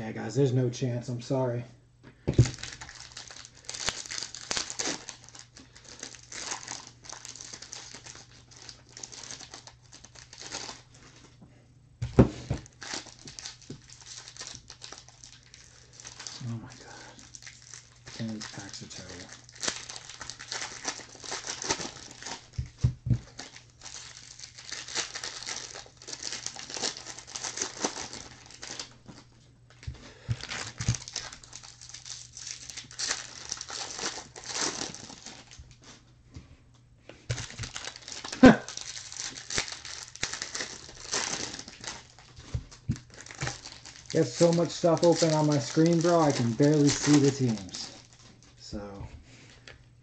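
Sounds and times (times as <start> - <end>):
foil wrapper crinkling: 2.3 - 11.3, 12.4 - 35.9, 37.2 - 48.6.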